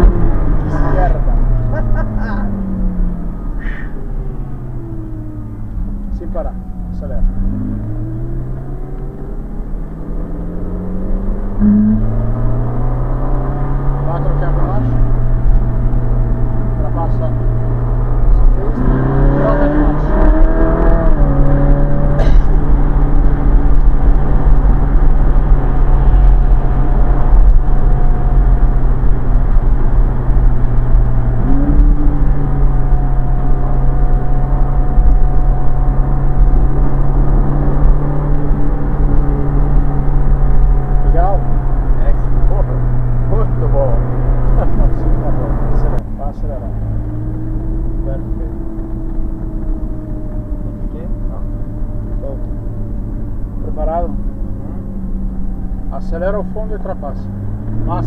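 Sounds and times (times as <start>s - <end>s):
sports car engine revving: 0.0s - 58.0s
wind noise: 17.4s - 46.0s.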